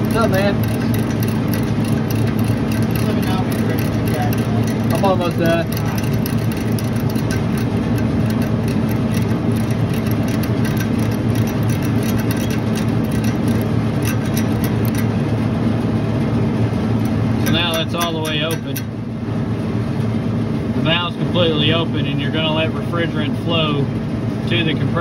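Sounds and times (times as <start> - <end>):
ratcheting wrench clicking: 0.0 - 15.2, 17.0 - 18.9
refrigeration machinery humming: 0.0 - 25.0.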